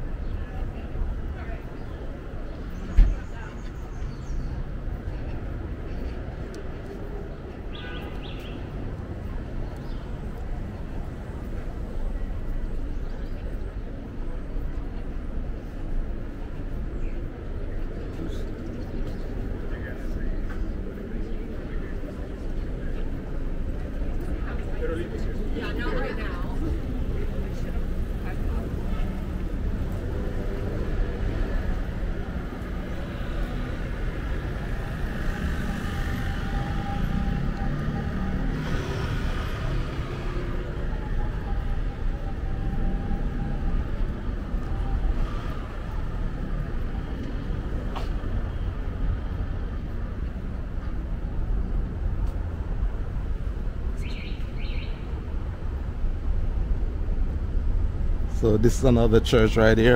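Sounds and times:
passing traffic rumble: 0:00.0 - 0:59.9.

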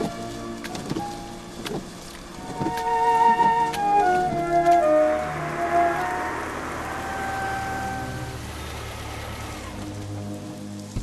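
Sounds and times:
film score music: 0:00.0 - 0:11.0
heavy rain on pavement: 0:00.0 - 0:11.0
low drone: 0:02.2 - 0:11.0.

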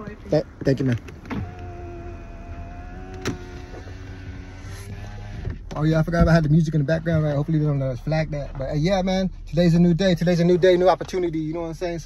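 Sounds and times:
car idling hum: 0:00.0 - 0:12.0
power window motor whining: 0:00.6 - 0:05.8.

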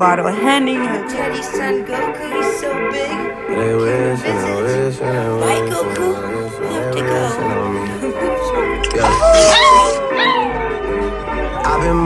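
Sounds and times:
background music: 0:00.0 - 0:12.0
dog howling: 0:06.7 - 0:12.0.

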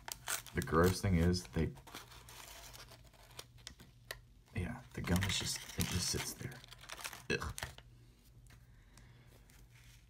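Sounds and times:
waxed paper wrapper crinkling: 0:00.0 - 0:03.7, 0:04.9 - 0:08.6.

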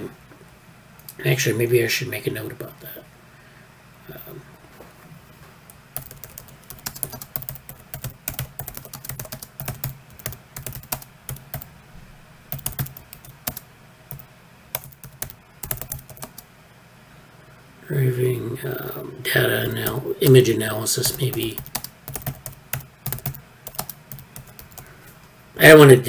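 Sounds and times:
typing on computer keyboard: 0:06.0 - 0:11.7, 0:12.5 - 0:16.4, 0:21.0 - 0:24.9.

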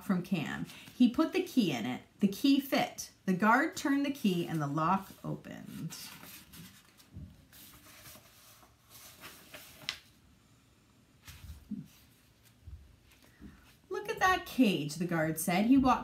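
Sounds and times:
book pages rustling: 0:04.3 - 0:10.2, 0:11.2 - 0:13.9.

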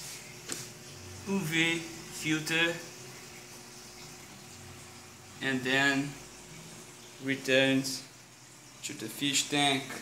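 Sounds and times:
running water: 0:00.0 - 0:10.0.

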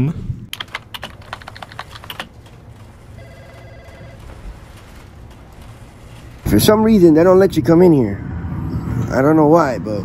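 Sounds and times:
computer keyboard typing: 0:00.5 - 0:02.6
desk phone ringing: 0:03.2 - 0:04.4.

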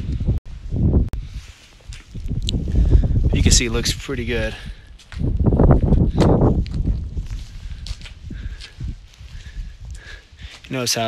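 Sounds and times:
wind buffeting microphone: 0:00.0 - 0:10.7
soft footsteps on sand: 0:00.5 - 0:03.6, 0:04.2 - 0:11.0.

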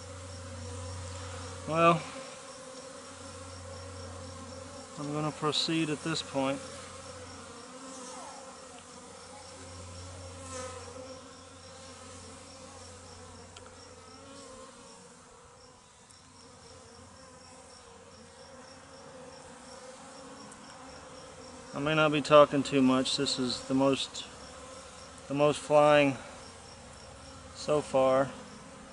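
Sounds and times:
bees buzzing: 0:00.0 - 0:28.9.

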